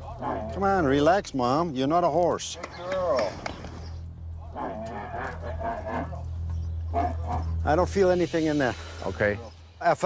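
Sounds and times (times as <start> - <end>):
camel moaning: 0.0 - 1.1, 4.4 - 7.7.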